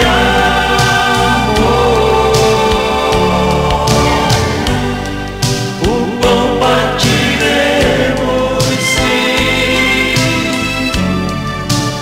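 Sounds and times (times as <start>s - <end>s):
instrumental backing music: 0.0s - 12.0s
man singing into microphone: 5.8s - 10.6s.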